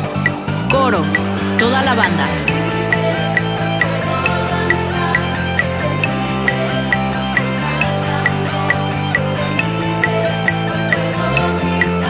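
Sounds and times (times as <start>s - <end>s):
bass guitar: 0.0s - 12.0s
metronome click track: 0.1s - 12.0s
rock band instrumental: 2.4s - 11.1s.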